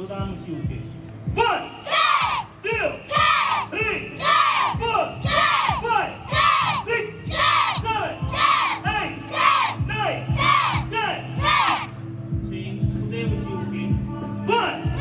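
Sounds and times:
children shouting in unison: 1.9s - 2.5s, 3.1s - 10.8s, 11.4s - 11.9s.

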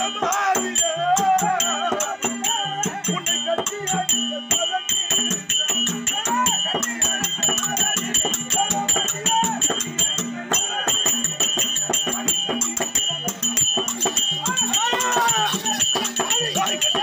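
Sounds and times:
drum fast steady rhythm: 0.0s - 17.0s
jingling percussion: 0.0s - 17.0s.

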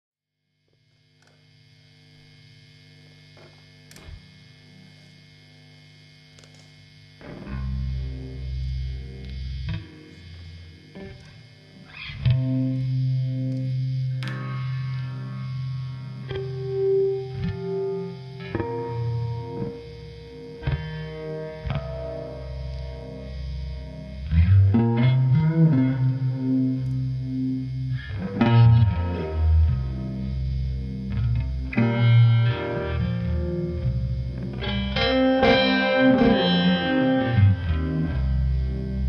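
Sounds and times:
guitar amp electrical hum: 0.4s - 39.0s
faint clicks: 6.3s - 6.8s.

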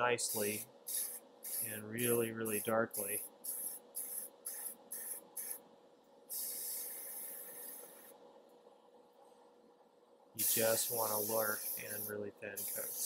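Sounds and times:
airbrush spraying paint: 0.2s - 5.6s, 6.3s - 8.2s, 10.4s - 13.0s.

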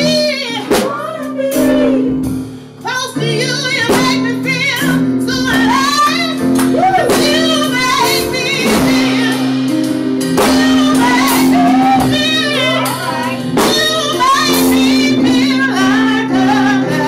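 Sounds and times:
held keyboard chords: 0.0s - 17.0s
person singing with vibrato: 0.0s - 17.0s
sharp drum hits: 5.4s - 15.6s.

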